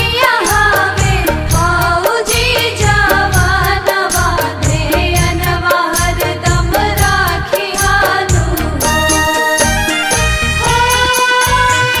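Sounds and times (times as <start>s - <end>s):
woman singing devotional song: 0.0s - 9.7s, 10.5s - 12.0s.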